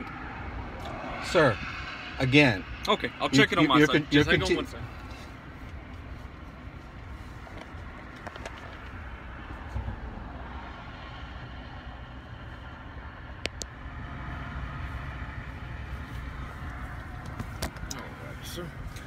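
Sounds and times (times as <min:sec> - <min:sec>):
traffic rumble: 0:00.0 - 0:19.0.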